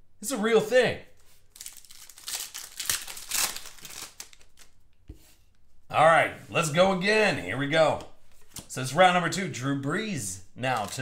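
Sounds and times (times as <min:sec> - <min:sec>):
foil wrapper tearing and crinkling: 0:01.4 - 0:04.8, 0:10.7 - 0:11.0.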